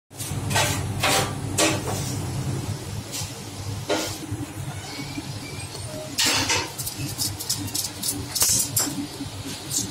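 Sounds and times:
steady low hum: 0:00.2 - 0:09.9.

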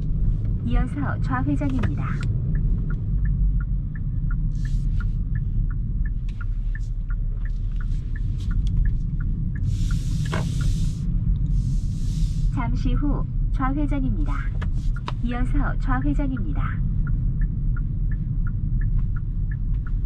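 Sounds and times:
low road rumble: 0:00.0 - 0:20.0
turn signal ticking: 0:00.0 - 0:20.0.

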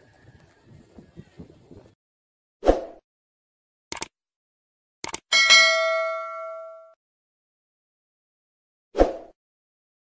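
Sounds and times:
bright notification bell ding: 0:05.3 - 0:07.0.

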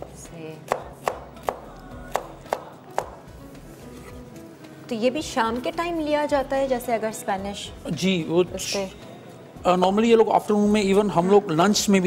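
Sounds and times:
knife chopping on cutting board: 0:00.7 - 0:03.2.

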